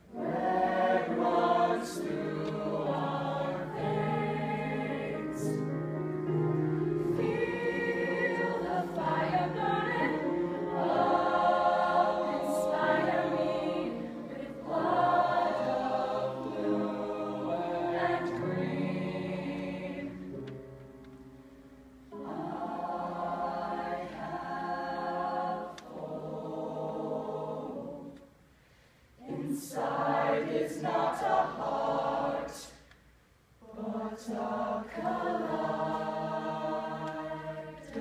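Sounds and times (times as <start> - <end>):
choir singing a slow ballad: 0.0 - 20.6, 22.1 - 32.9, 33.6 - 38.0.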